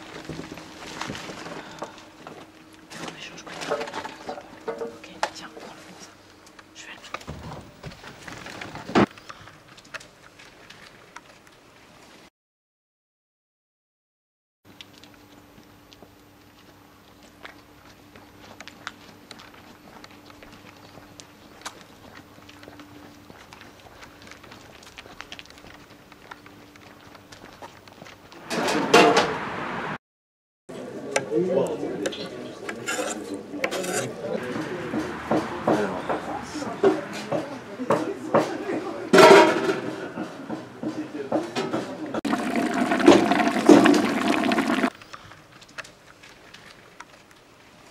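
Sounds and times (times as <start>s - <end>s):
plastic crates scraping and rattling: 3.1s - 4.9s, 7.2s - 9.1s.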